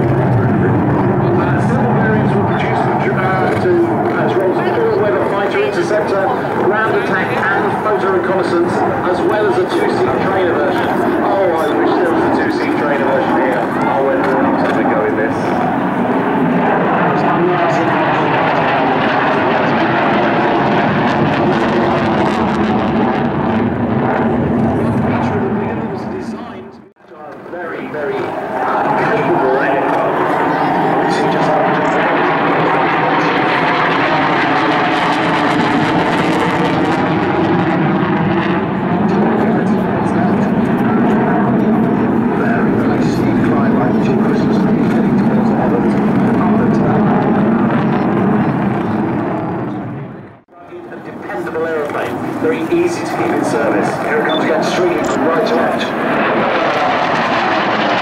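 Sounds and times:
loud jet aircraft noise: 0.0 - 58.0.

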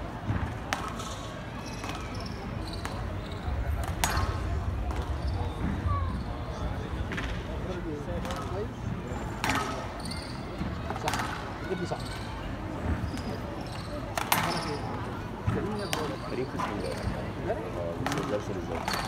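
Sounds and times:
murmur of crowd voices: 0.0 - 19.0
shoes squeaking on court floor: 1.0 - 4.3, 9.7 - 17.3
squash ball cracks: 8.2 - 8.6, 9.4 - 9.9, 14.1 - 14.6.

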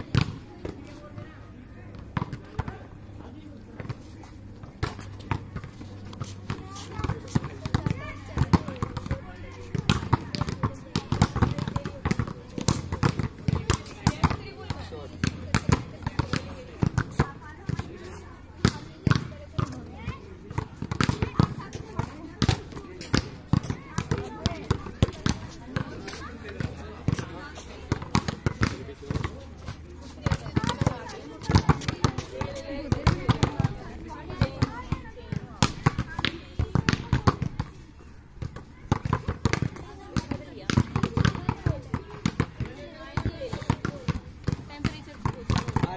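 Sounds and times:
volleyball hits and bounces: 0.0 - 1.2, 1.9 - 2.9, 3.8 - 37.8, 38.4 - 45.9.

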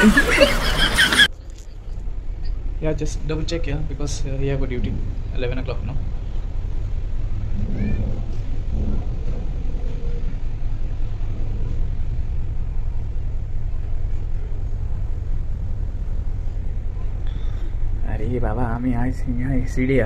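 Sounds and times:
wind buffeting the microphone: 3.2 - 20.0.

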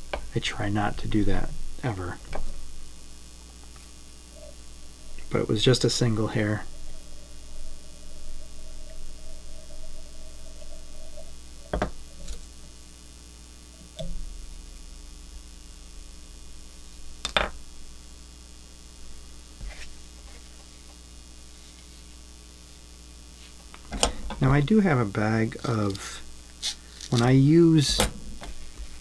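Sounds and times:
electrical mains hum: 0.0 - 29.0.

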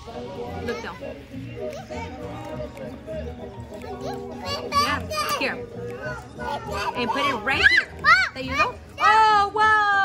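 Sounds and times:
children chattering: 0.0 - 9.5
background music: 0.0 - 10.0
child's high-pitched voice: 3.8 - 9.2.

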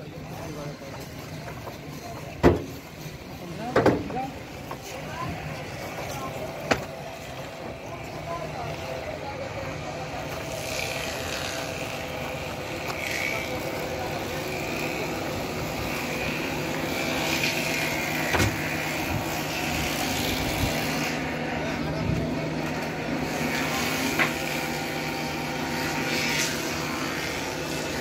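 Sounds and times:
faint distant voices: 0.0 - 28.0
machinery humming: 0.0 - 28.0.

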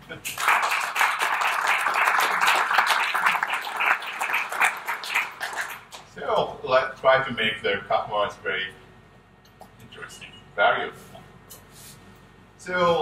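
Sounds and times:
audience applause: 0.3 - 6.1.

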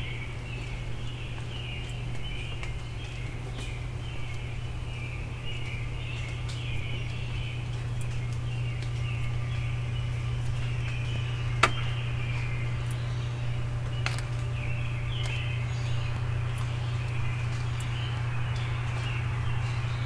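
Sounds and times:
songbirds chirping and singing: 0.0 - 20.0
steady low hum: 0.0 - 20.0.

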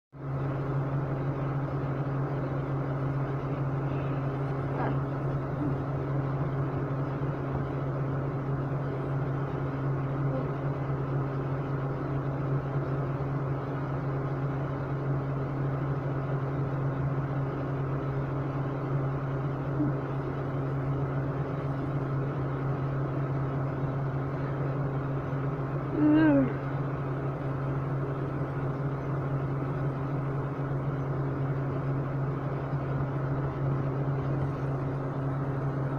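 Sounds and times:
air conditioner humming: 0.2 - 35.9.

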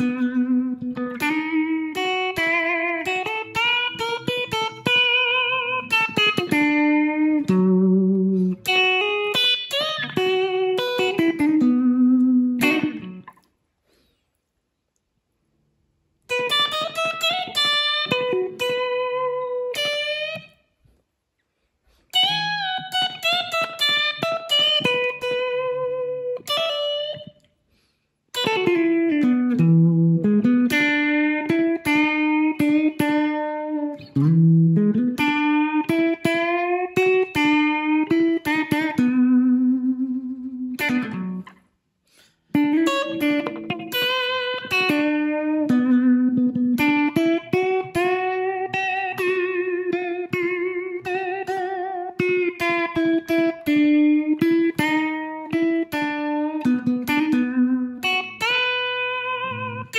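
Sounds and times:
electric blues guitar solo: 0.0 - 13.4, 16.3 - 20.6, 21.9 - 27.4, 28.3 - 59.9.

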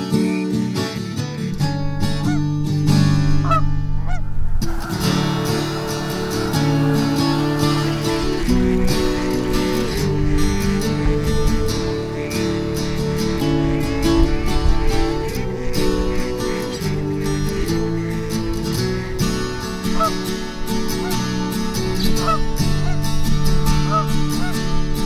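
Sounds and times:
acoustic guitar music: 0.0 - 25.0
geese honking: 1.6 - 25.0.

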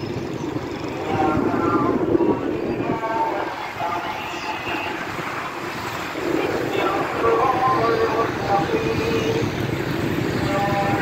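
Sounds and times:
traffic rumble: 0.0 - 11.0
person speaking: 6.2 - 9.5.

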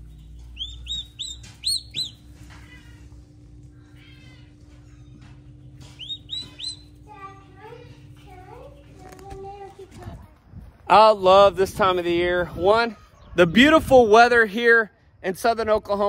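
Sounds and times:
turkey chick peeping: 0.0 - 2.6, 4.6 - 7.1.

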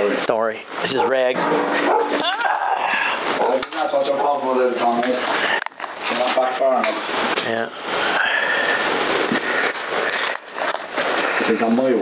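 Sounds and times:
plastic bag rustling: 7.9 - 11.6.

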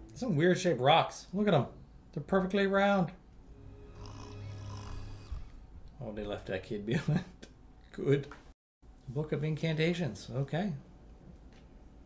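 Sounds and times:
quiet film music: 0.0 - 6.4
boy snoring: 3.9 - 5.6.

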